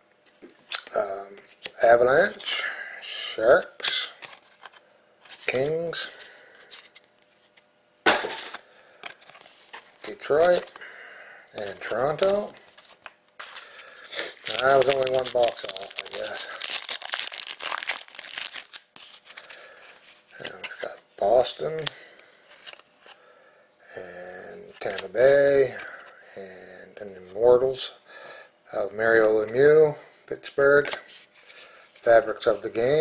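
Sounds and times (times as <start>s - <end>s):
person speaking: 10.0s - 10.9s, 11.5s - 12.7s, 13.4s - 18.8s
foil pack tearing and crinkling: 11.6s - 20.7s.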